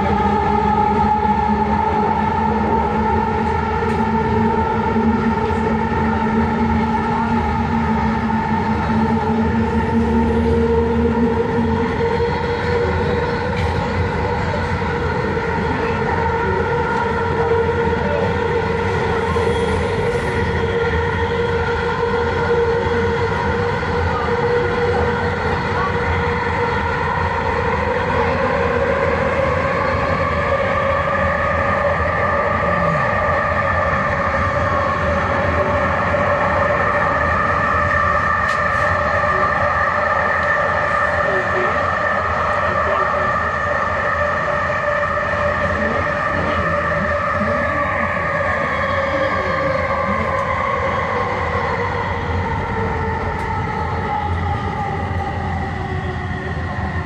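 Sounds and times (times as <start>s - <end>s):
multi-tone motor whine: 0.0s - 57.0s
train car rumbling: 0.0s - 57.0s.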